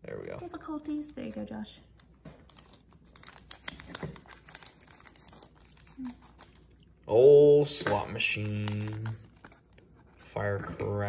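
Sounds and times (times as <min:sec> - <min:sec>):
foil wrapper crinkling and tearing: 0:00.9 - 0:06.9, 0:08.0 - 0:10.2.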